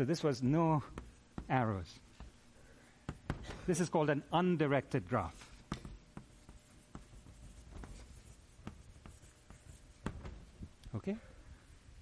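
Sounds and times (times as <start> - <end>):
chalk scratching on blackboard: 0.2 - 10.6.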